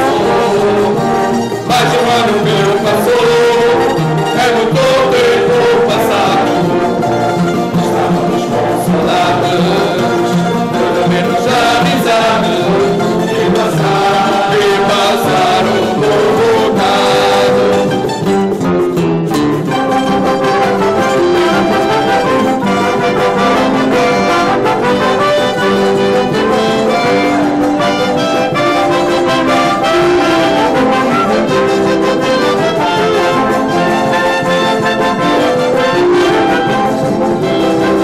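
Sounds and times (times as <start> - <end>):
brass and woodwind band playing: 0.0 - 18.7, 19.6 - 38.0
acoustic guitars: 0.0 - 38.0.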